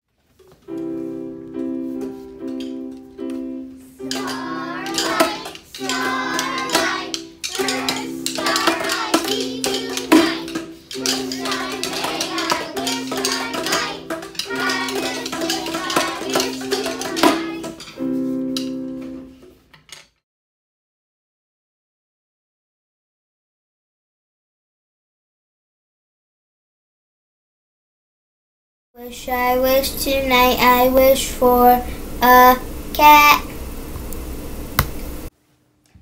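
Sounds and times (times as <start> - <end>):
keyboard playing chords: 0.5 - 19.4
children's voices: 4.0 - 18.0, 29.0 - 33.6.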